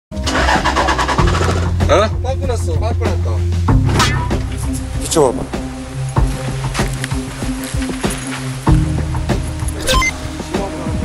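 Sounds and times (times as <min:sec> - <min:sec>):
music: 0:00.1 - 0:11.0.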